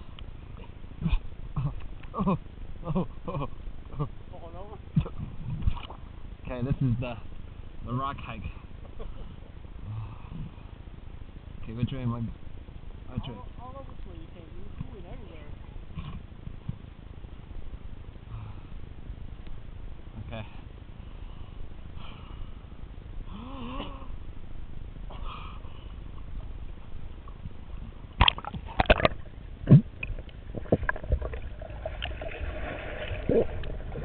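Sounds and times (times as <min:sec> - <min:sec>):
muffled underwater rumble: 0:00.0 - 0:11.4, 0:24.1 - 0:34.0.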